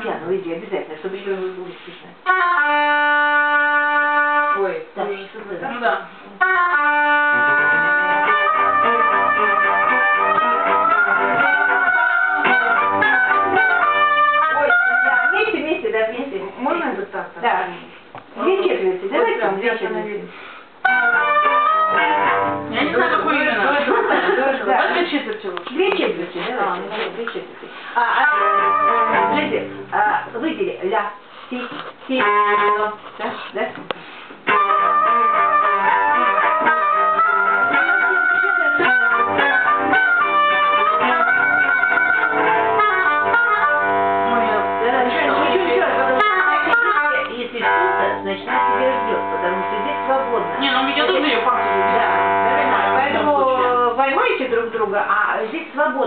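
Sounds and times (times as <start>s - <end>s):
instrumental ensemble playing: 2.2s - 4.9s, 6.2s - 15.4s, 20.8s - 25.1s, 27.7s - 30.4s, 31.3s - 33.5s, 34.1s - 53.8s.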